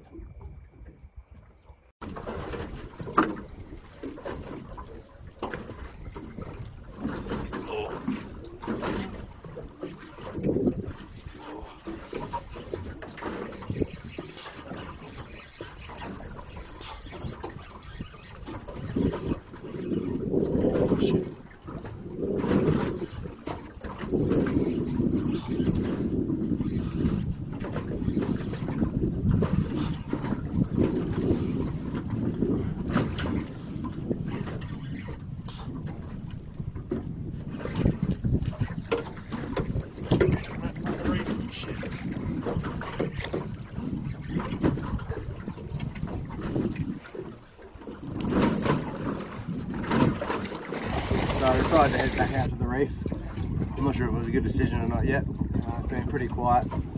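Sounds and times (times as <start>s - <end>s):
water slapping boat hull: 0.0s - 56.9s
wind buffeting microphone: 0.0s - 56.9s.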